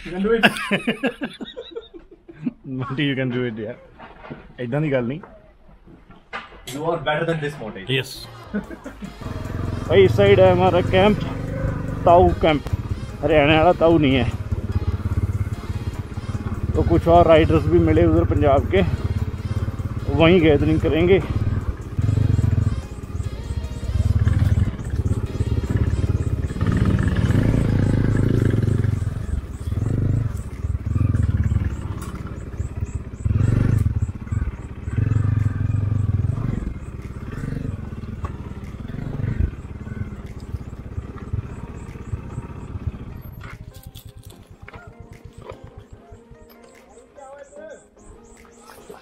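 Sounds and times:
background music: 0.0 - 1.8, 6.7 - 49.0
motorcycle engine revving: 9.1 - 46.6.

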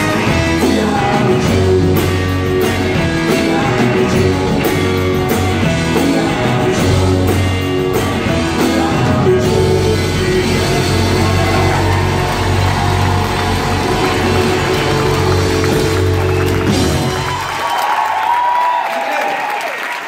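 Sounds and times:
live rock band with saxophone: 0.0 - 18.4
crowd cheering and applauding: 8.8 - 20.0.

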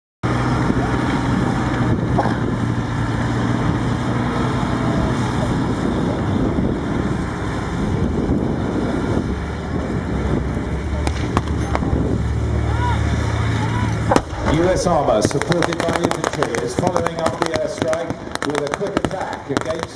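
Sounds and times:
tank engines droning: 0.2 - 19.9
crowd chatter: 0.3 - 19.9
wind on microphone: 0.4 - 12.6.

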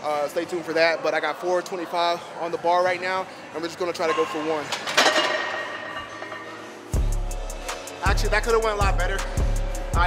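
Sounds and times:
music with heavy bass: 7.0 - 10.0.

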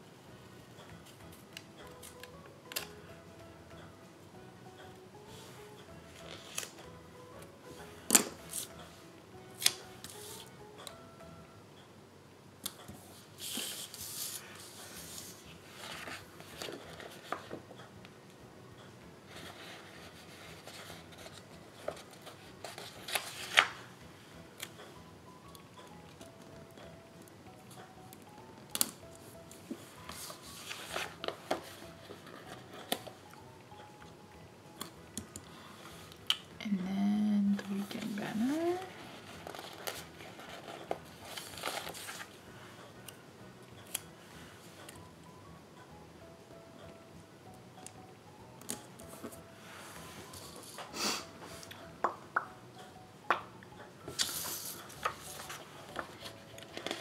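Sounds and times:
quiet background music: 0.0 - 57.0
paper rustling and sliding: 13.4 - 17.6, 19.3 - 23.8, 30.0 - 32.7, 39.1 - 42.3, 54.1 - 57.0.

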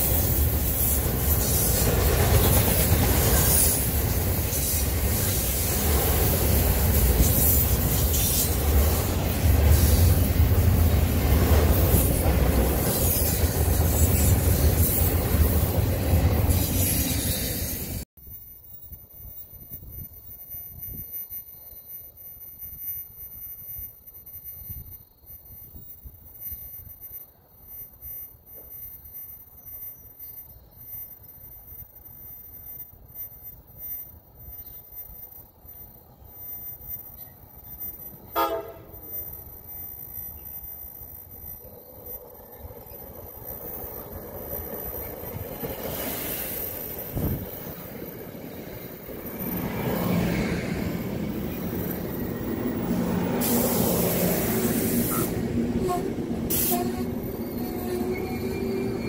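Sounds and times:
train rumble and rail hiss: 0.0 - 18.1, 23.5 - 59.0
train horn toot: 38.3 - 39.2, 55.0 - 59.0
wind on microphone: 47.0 - 47.5.

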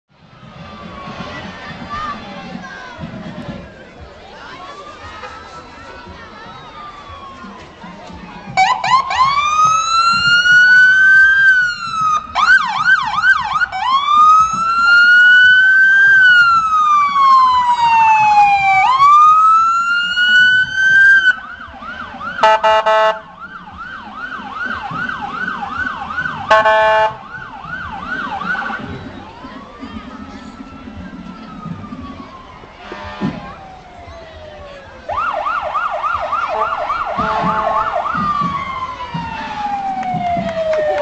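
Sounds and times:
police siren wailing and yelping: 8.5 - 32.8, 33.5 - 41.0
car horn blasts: 22.4 - 23.3, 26.5 - 27.2, 36.6 - 38.0.

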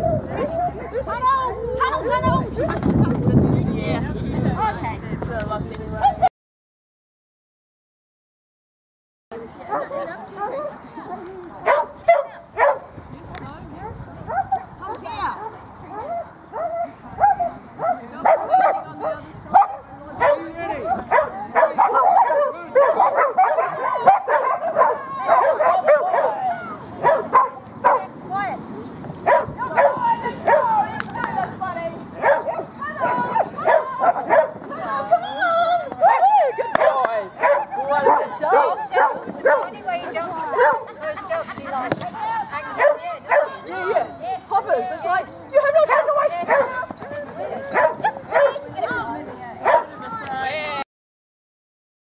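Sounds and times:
dogs barking and yipping: 0.0 - 2.3, 9.6 - 13.0, 13.8 - 31.5, 32.2 - 41.5, 42.6 - 50.2.

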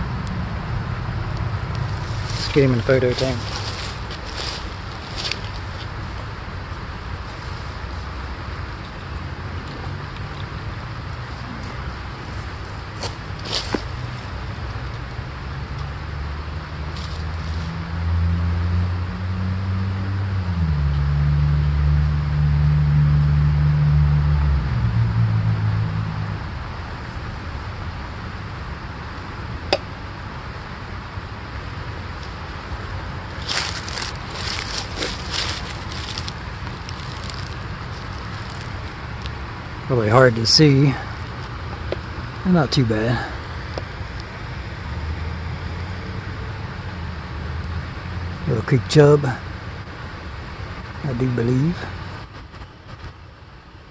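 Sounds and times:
distant engine rumble: 0.0 - 53.8
steady low background hum: 0.0 - 53.9.

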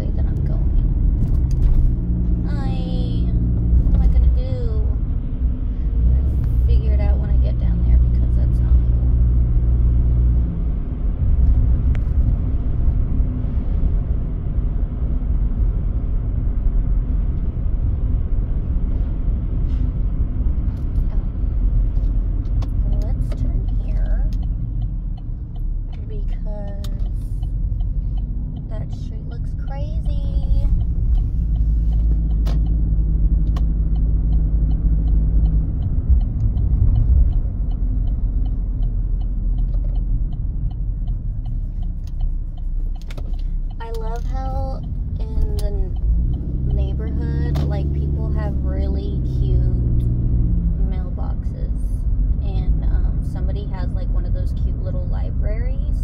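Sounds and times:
car cabin road rumble: 0.0 - 56.0
engine hum: 0.0 - 56.0.

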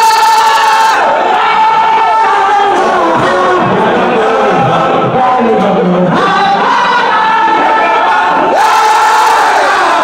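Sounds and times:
crowd of men chanting: 1.0 - 10.0.

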